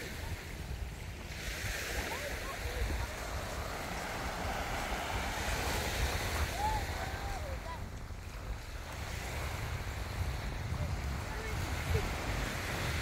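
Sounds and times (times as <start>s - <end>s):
faint distant voices: 0.0s - 13.0s
small waves washing onto sand: 0.0s - 13.0s
wind rumbling on microphone: 0.0s - 13.0s.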